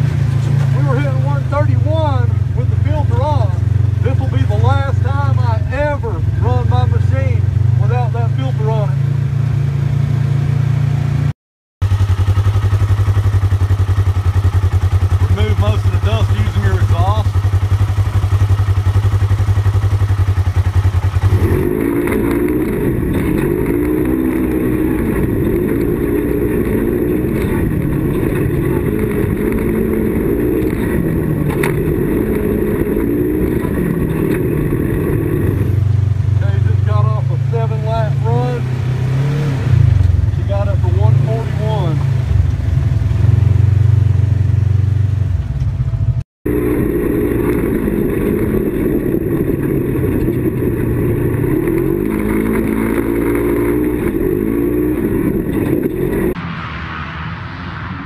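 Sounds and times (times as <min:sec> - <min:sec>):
vehicle engine revving from cab: 0:12.0 - 0:44.0, 0:46.4 - 0:56.4.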